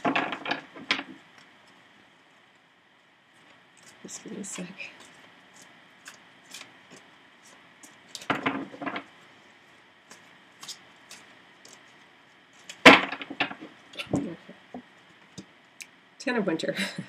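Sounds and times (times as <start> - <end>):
cards being shuffled: 3.4 - 9.1, 10.0 - 14.4.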